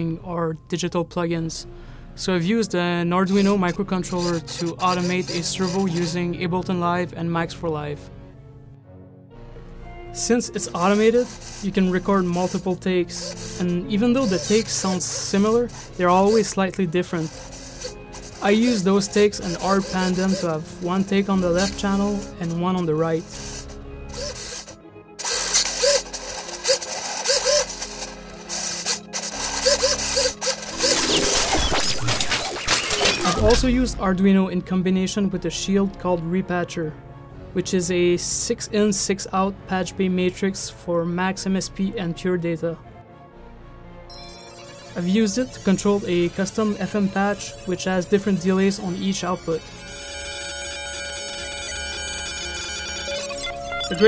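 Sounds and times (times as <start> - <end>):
servo motor whirring: 3.3 - 6.3, 10.6 - 33.9, 44.3 - 54.0.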